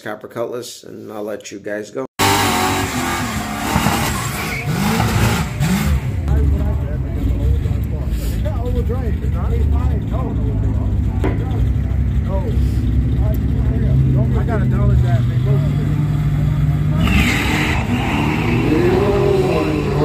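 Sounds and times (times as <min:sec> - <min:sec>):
car engine revving: 0:02.2 - 0:20.0.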